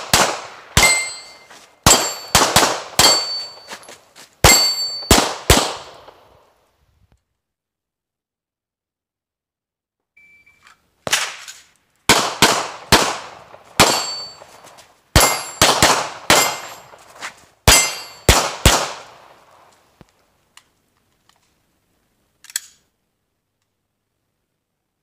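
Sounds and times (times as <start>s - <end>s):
pistol shots: 0.0s - 3.7s, 4.4s - 6.3s, 11.1s - 14.5s, 15.2s - 17.0s, 17.7s - 19.6s.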